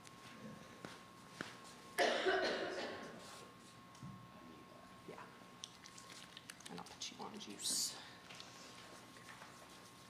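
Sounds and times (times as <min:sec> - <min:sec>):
person coughing: 0:02.0 - 0:03.2.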